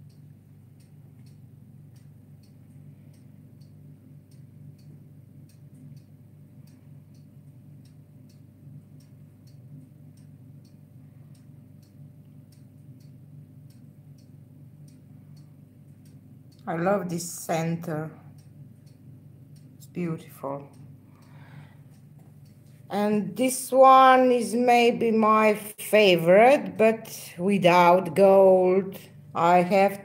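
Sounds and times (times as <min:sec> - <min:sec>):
faint regular ticking: 0:00.0 - 0:30.0
low steady hum: 0:00.0 - 0:30.0.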